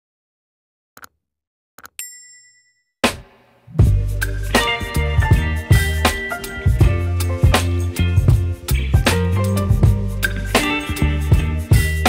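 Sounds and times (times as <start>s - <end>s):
notification bell ding: 2.0s - 2.9s
music with heavy bass beat: 3.8s - 12.0s.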